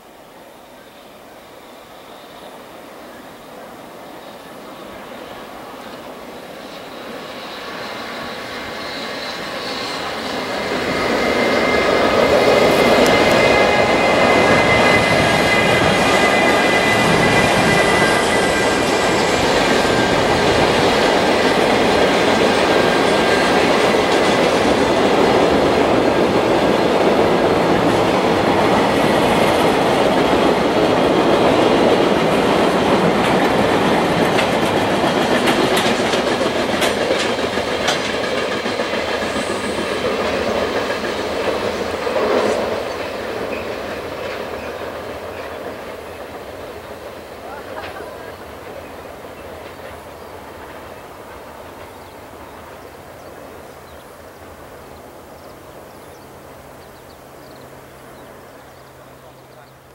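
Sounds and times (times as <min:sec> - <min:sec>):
locomotive high whine: 0:00.0 - 0:59.9
wheels clickety-clack: 0:07.3 - 0:54.0.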